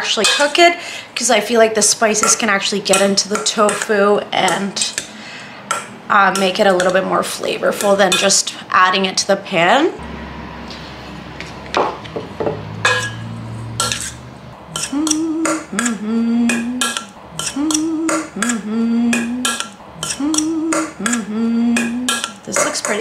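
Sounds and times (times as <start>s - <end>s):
spoon clinking against metal bowl: 0.1s - 0.6s, 2.1s - 7.0s, 12.8s - 15.7s, 16.5s - 18.3s, 19.2s - 20.9s, 21.8s - 23.0s.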